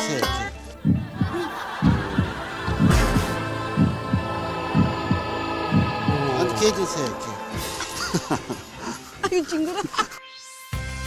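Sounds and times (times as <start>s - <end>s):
sustained music drone: 0.6s - 9.6s
heartbeat thumps: 0.8s - 6.5s.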